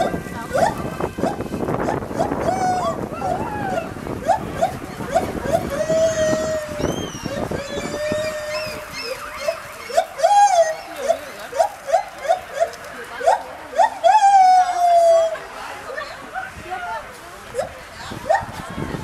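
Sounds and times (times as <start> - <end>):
gibbons singing hoots: 0.0 - 15.6.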